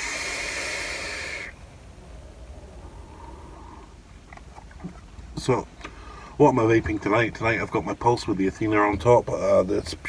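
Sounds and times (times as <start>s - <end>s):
breathy exhale: 0.0s - 1.6s, 2.2s - 4.0s, 5.8s - 6.4s
vape draw hiss: 0.0s - 1.6s.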